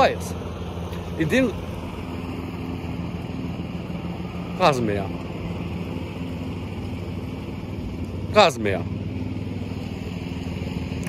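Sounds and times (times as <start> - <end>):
lawn mower engine running: 0.0 - 11.0.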